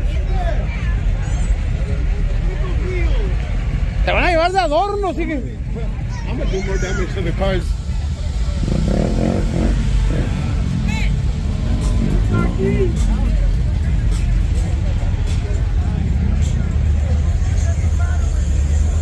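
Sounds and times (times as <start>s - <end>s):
car engines rumbling: 0.0s - 19.0s
voices: 0.0s - 19.0s
music: 11.4s - 19.0s.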